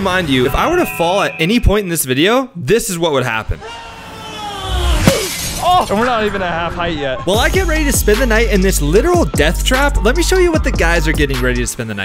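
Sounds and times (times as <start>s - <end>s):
melon smashing on ground: 5.0s - 5.5s.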